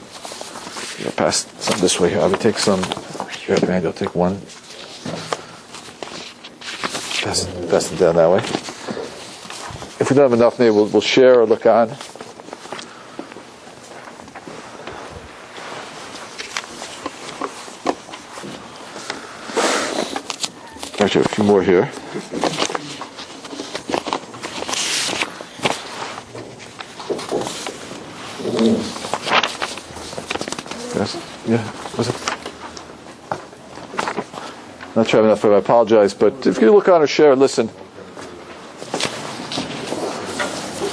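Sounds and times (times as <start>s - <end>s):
paper sheets rustling: 0.0s - 40.9s.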